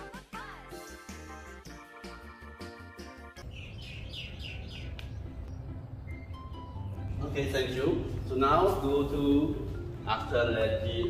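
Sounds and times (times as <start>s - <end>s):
small bird chirping: 3.4s - 6.4s.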